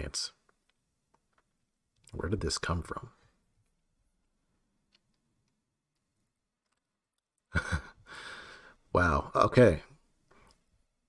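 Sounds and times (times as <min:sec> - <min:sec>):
man laughing breathily: 0:07.5 - 0:08.7.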